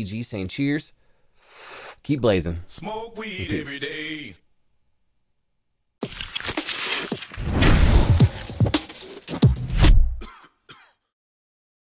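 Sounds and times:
deep electronic boom: 7.4 - 8.5
short swooshing hits: 7.4 - 8.9.

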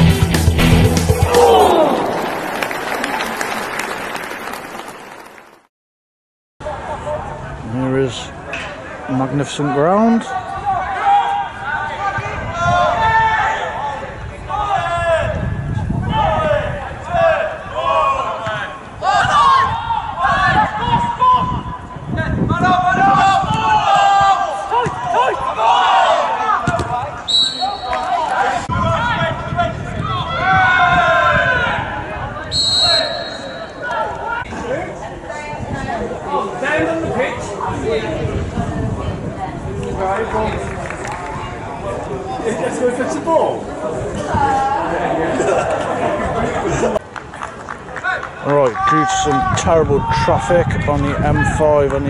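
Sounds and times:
players shouting: 0.8 - 4.9, 22.6 - 34.6
low outdoor background noise: 6.6 - 49.4
referee's whistle blasts: 27.3 - 28.2, 32.5 - 33.8.

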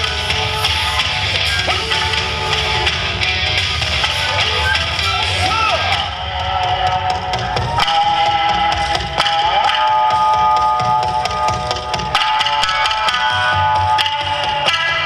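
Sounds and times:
loud dance music: 0.0 - 15.0.

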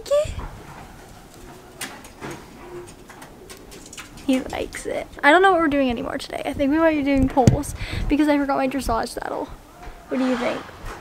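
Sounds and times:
pigeon cooing: 0.1 - 4.9.

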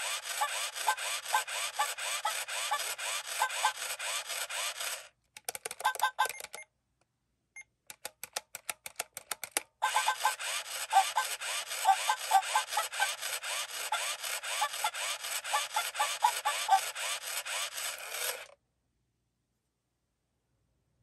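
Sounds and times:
tinny electronic toy song: 0.0 - 5.1, 9.8 - 18.5
quick clicking beats: 0.0 - 6.6, 7.9 - 18.5
scratchy rhythmic sound with chirps: 9.8 - 13.2, 13.9 - 17.2.

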